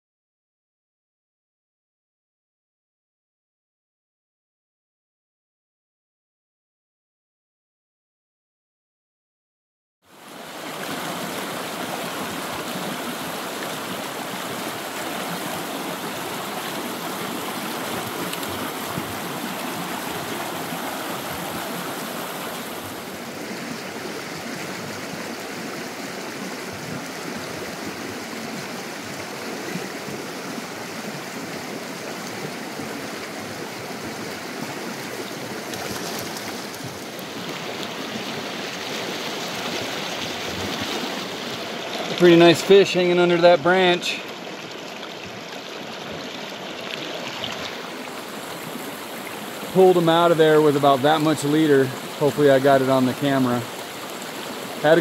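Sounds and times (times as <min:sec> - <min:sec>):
creek flowing over rocks: 0:10.1 - 0:55.0.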